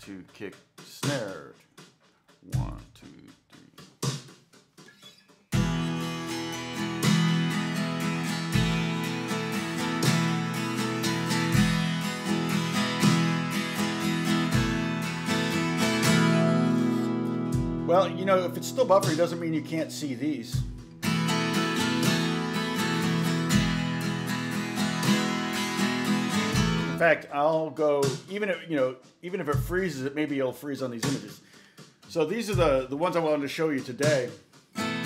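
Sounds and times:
drum beat kick and snare: 0.0s - 19.8s, 20.5s - 35.0s
acoustic guitar strumming chords: 5.0s - 27.2s, 34.8s - 35.0s.

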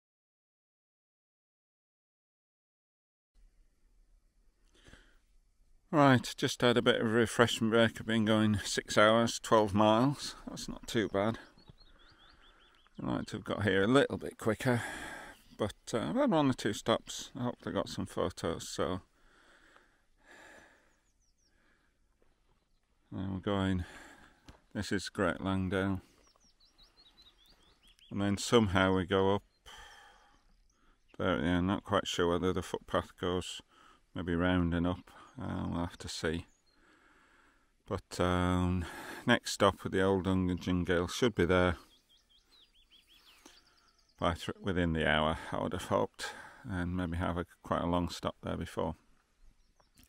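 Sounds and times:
faint birdsong: 3.4s - 50.0s
soft breath: 4.7s - 5.4s, 14.8s - 15.6s, 19.1s - 22.4s, 29.6s - 31.1s, 33.7s - 34.1s, 36.7s - 37.7s.

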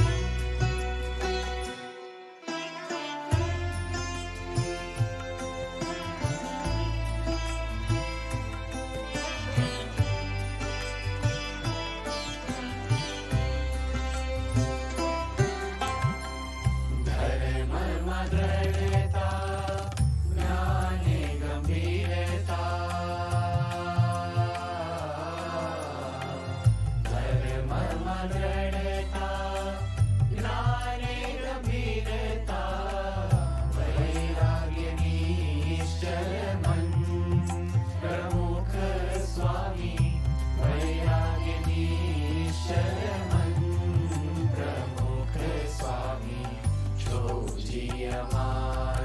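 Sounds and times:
men singing devotional song: 0.0s - 0.4s, 16.9s - 49.0s
light percussion: 0.0s - 49.0s.

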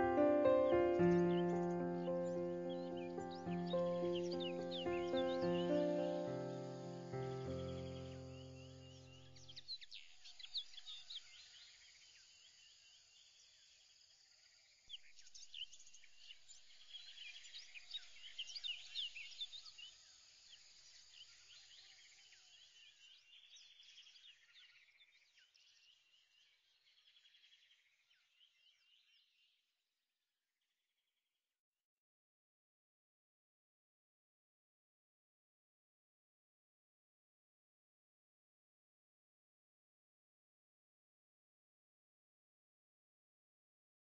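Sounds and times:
music: 0.0s - 9.5s
birds chirping: 0.0s - 11.3s.

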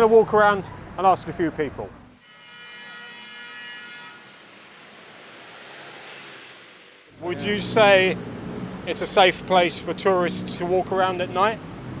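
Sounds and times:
distant traffic hiss: 3.2s - 12.0s.

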